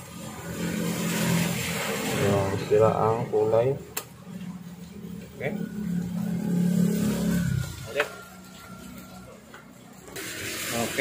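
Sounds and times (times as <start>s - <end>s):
vehicle engine humming: 0.0s - 10.2s.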